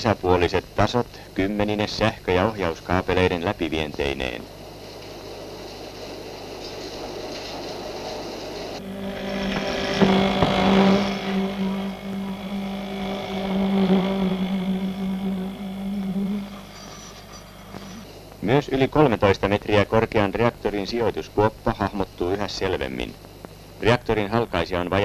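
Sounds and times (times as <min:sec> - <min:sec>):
steady even-pitched hum: 0:00.0 - 0:25.0.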